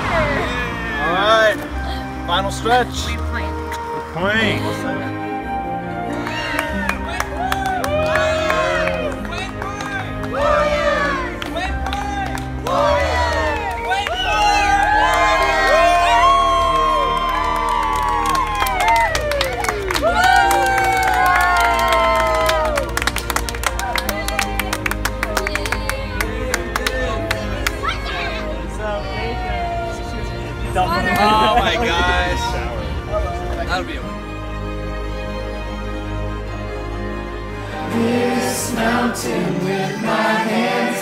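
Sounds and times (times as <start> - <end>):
crowd cheering and whooping: 0.0 - 1.6, 6.0 - 9.4, 12.6 - 34.0
background music: 0.0 - 41.0
crowd clapping: 5.9 - 34.0.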